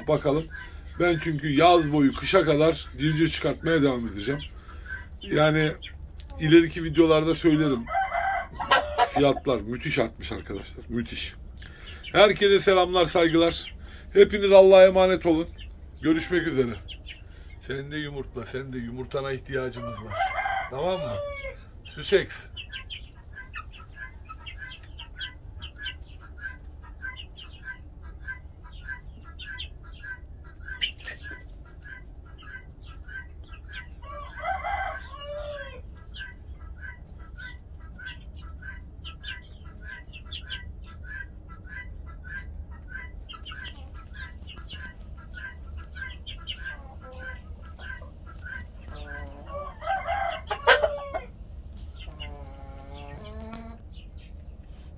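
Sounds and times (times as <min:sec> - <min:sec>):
chickens calling: 0:00.0 - 0:54.9.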